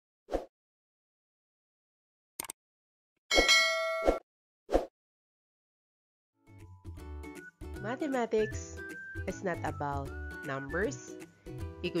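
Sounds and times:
bright metallic ding: 3.3 - 4.2.

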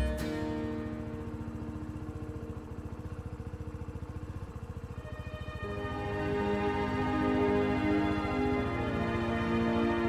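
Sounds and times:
scooter engine idling: 0.0 - 10.0
soft background music: 4.7 - 10.0.

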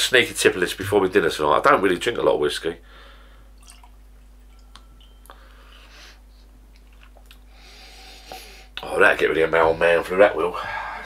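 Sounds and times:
liquid pouring into glass: 3.6 - 5.4
light glass ticks: 4.5 - 5.4.

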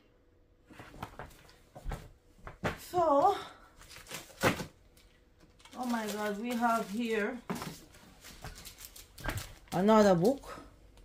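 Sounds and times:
woman speaking: 2.8 - 3.6, 5.7 - 7.5, 9.7 - 10.7
paper and cardboard rustle: 5.6 - 10.5.

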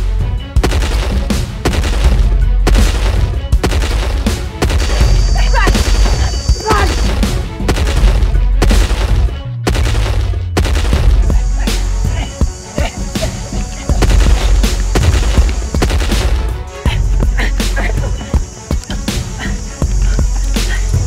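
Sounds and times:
music with heavy low rumble: 0.0 - 21.0
rapid gunfire: 0.6 - 11.8, 13.9 - 16.6.

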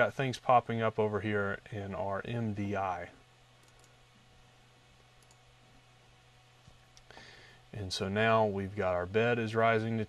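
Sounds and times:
faint low hum: 0.0 - 10.0
computer mouse clicks: 3.6 - 4.0, 5.2 - 5.5.

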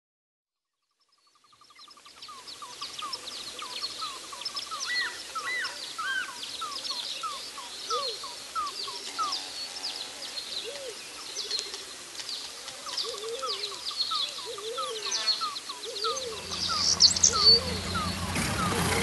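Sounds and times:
birds calling and singing: 1.0 - 19.0
bird repeating slurred note: 14.6 - 19.0.

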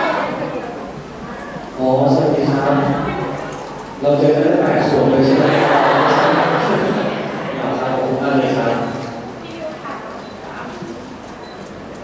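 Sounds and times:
soft voices talking: 6.5 - 11.3.

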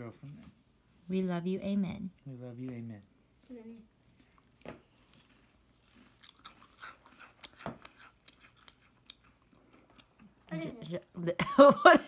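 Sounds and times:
crackers being chewed: 4.1 - 10.5.

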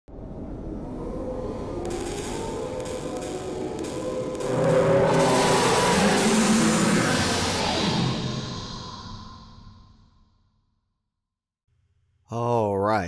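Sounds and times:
dark music with held tones: 0.1 - 9.8
low rumble: 0.1 - 10.4
loud whooshing rush: 0.8 - 10.0.

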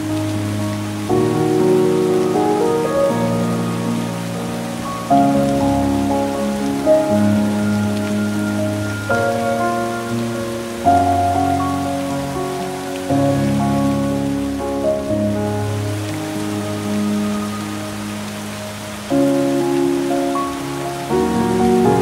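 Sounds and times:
calm music with held chords: 0.0 - 22.0
steady rain-like hiss: 0.0 - 22.0.

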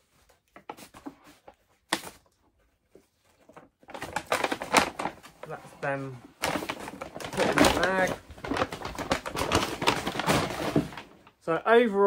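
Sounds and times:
yarn rustling into bag: 3.9 - 11.2.

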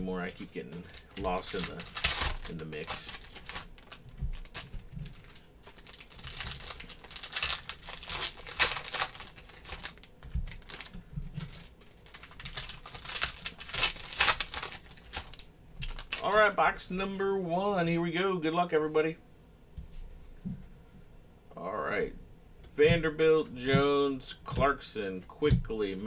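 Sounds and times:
cards being handled: 0.0 - 16.3
foil wrappers crinkling: 0.0 - 16.6.

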